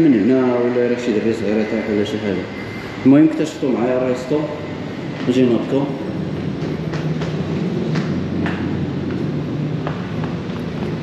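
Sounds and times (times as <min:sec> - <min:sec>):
low machine hum: 0:00.0 - 0:11.0
footsteps on tiled stairs: 0:06.0 - 0:11.0.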